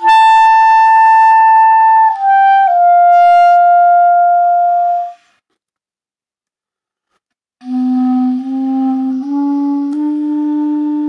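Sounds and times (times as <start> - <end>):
clarinet holding a high note: 0.0 - 5.2, 7.6 - 11.0.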